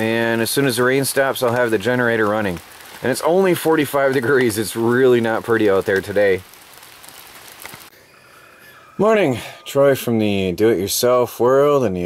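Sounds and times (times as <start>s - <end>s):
light rain hissing: 0.0s - 9.7s.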